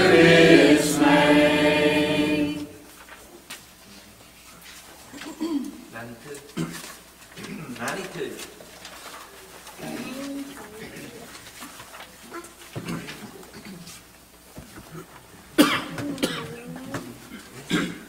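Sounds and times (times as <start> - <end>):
person coughing: 5.2 - 5.8, 15.6 - 16.6, 17.3 - 18.0.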